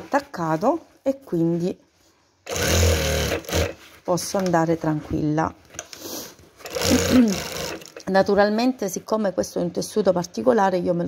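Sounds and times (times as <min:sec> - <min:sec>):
sewing machine running: 0:02.4 - 0:03.9, 0:06.6 - 0:08.1.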